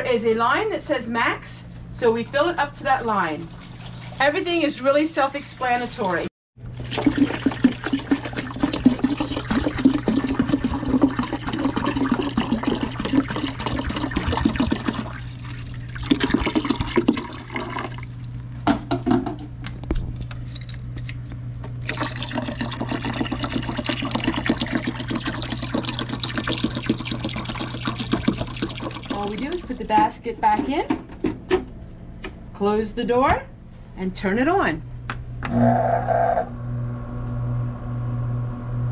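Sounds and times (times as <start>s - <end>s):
water pouring into plastic reservoir: 6.0s - 18.4s, 21.8s - 29.9s.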